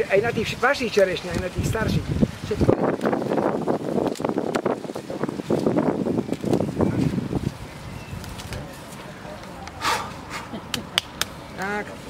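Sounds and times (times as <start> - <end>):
wind on microphone: 0.0 - 10.7
group talking indistinctly: 6.5 - 12.0.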